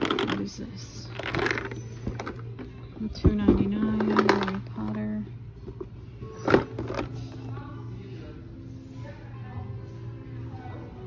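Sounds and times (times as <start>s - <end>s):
quiet background music: 0.0s - 11.0s.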